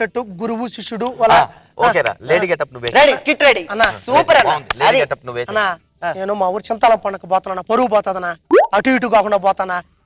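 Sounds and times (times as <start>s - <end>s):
men talking: 0.0s - 9.8s.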